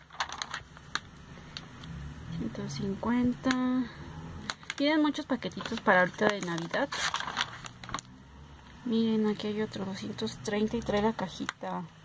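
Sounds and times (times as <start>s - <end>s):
paper page turning: 0.0s - 1.0s, 4.5s - 8.1s.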